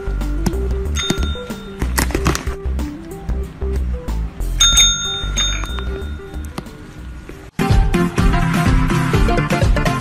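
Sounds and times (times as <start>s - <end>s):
service bell ringing: 0.8s - 1.8s, 4.6s - 6.6s.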